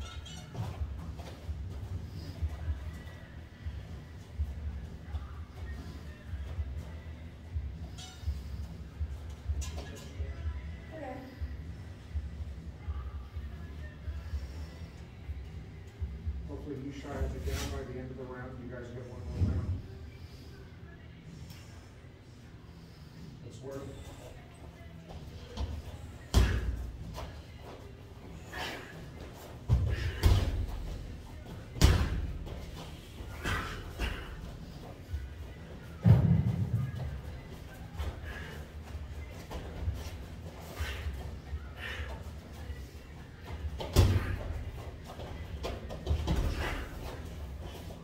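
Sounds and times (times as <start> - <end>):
feet stamping on ring floor: 43.4 - 48.0.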